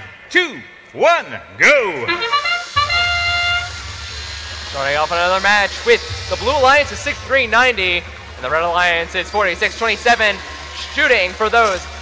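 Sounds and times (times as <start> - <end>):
brass-like fanfare over speakers: 2.0 - 4.8
steady low hum: 2.2 - 12.0.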